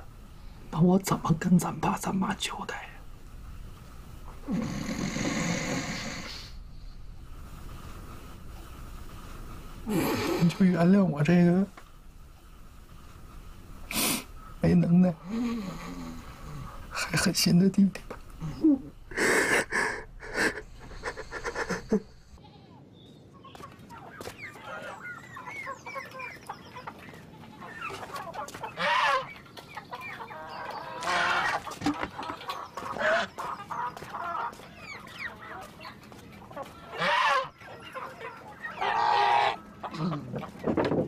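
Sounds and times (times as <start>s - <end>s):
chickens clucking: 8.1s - 22.4s, 23.4s - 41.0s
loud animal calls: 18.4s - 22.4s, 36.8s - 40.6s.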